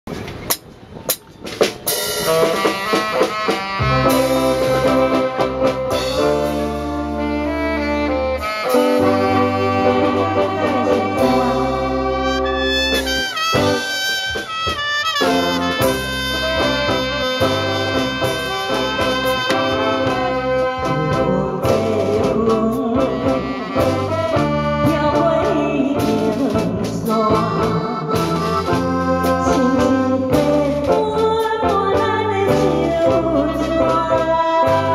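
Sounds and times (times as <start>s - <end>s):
bass: 0.0s - 34.9s
drum kit: 0.0s - 34.9s
keyboard: 0.3s - 34.9s
horn section melody: 1.9s - 30.9s.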